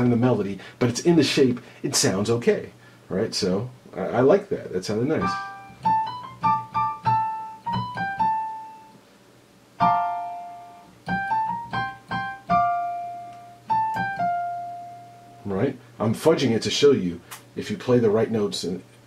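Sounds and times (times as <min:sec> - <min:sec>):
single-note piano melody: 0:09.8 - 0:15.4.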